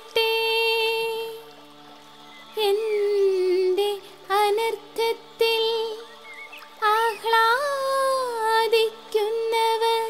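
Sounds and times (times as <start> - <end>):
high voice singing: 0.0 - 10.0.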